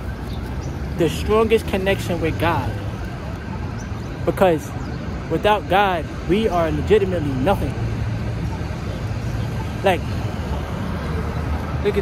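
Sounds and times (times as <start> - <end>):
cars passing: 0.0 - 12.0
city street traffic rumble: 0.0 - 12.0.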